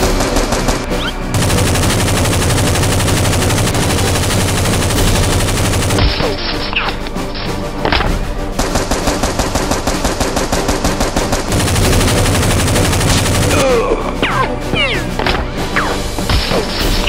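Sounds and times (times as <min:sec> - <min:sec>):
automatic gunfire effects: 0:00.0 - 0:06.8, 0:08.6 - 0:13.7
background music: 0:00.0 - 0:17.0.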